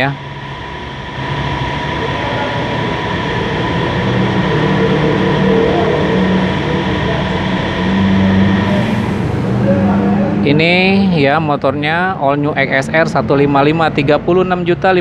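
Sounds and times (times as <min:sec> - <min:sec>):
high mechanical whine: 0:00.0 - 0:15.0
low machine hum: 0:00.0 - 0:15.0.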